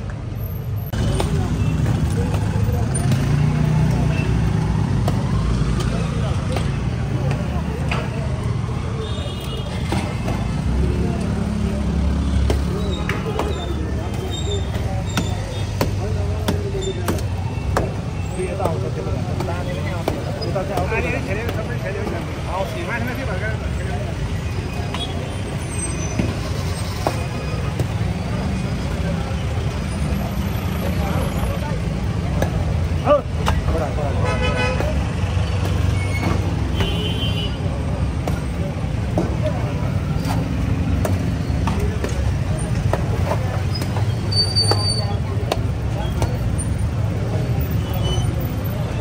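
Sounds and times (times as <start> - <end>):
road traffic rumble: 0.0 - 49.0.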